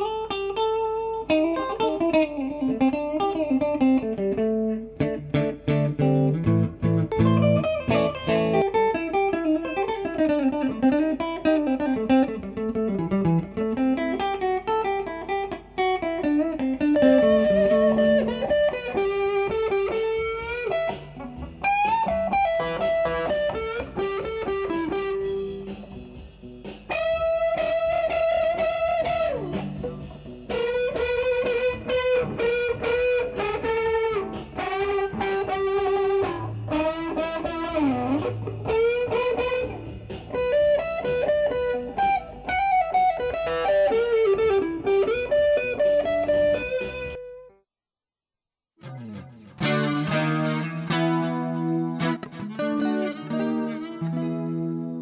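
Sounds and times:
electric guitar lead lines: 0.0s - 47.6s, 48.8s - 55.0s.

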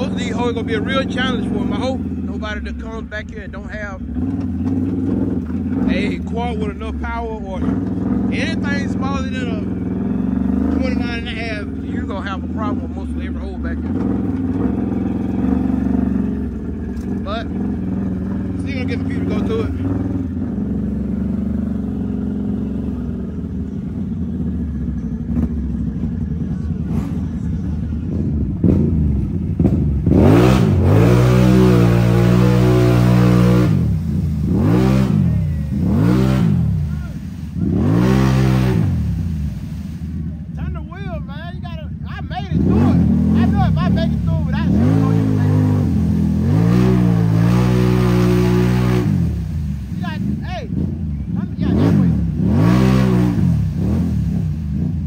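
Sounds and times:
atv engine revving hard: 0.0s - 25.9s, 26.8s - 40.3s, 42.4s - 55.0s
atv engine running: 0.0s - 55.0s.

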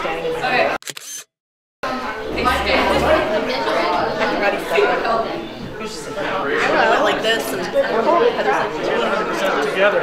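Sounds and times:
indistinct crowd talk: 0.0s - 1.2s, 1.8s - 10.0s.

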